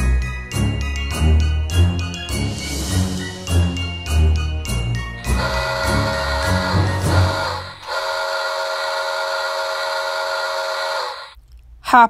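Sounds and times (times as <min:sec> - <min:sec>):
steam whistle chord: 0:05.2 - 0:11.4.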